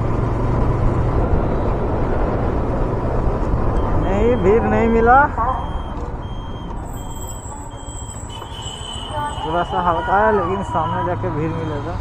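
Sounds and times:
road and wind noise: 0.0s - 12.0s
short high beeps: 3.8s - 9.8s.

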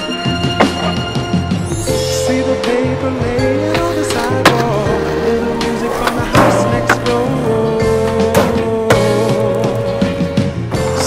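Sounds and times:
song: 0.0s - 11.0s
skateboard wheels rolling on asphalt: 3.2s - 11.0s
skateboard clack: 3.7s - 9.9s.

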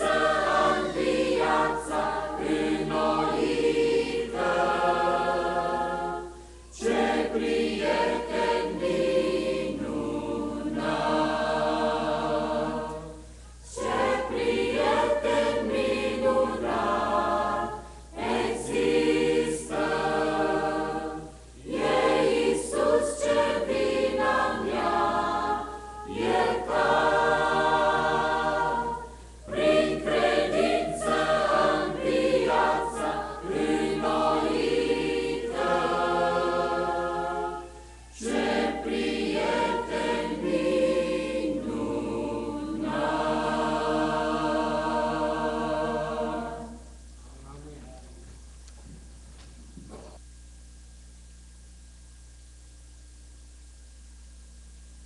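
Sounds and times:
mixed choir singing: 0.0s - 47.0s.

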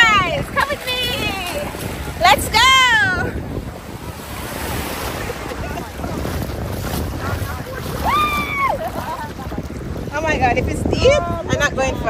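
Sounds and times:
waves washing onto sand: 0.0s - 12.0s
wind buffeting microphone: 0.0s - 12.0s.

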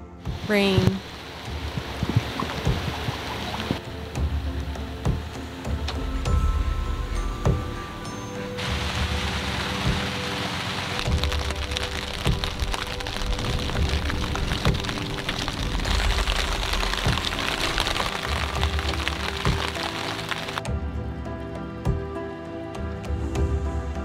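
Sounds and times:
rain hiss and patter: 0.0s - 22.0s
background music: 0.0s - 24.0s.

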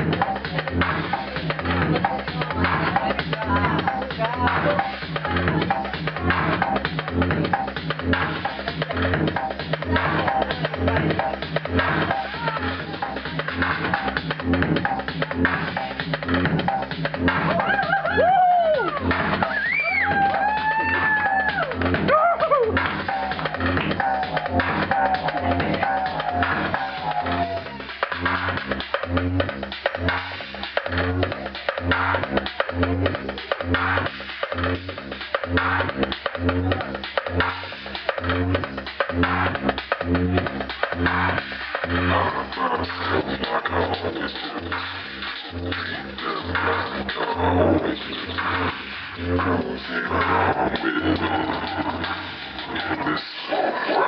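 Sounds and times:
steady kick drum: 0.0s - 53.2s
minimal techno music: 0.0s - 54.0s
swooping synth sounds: 0.0s - 54.0s.

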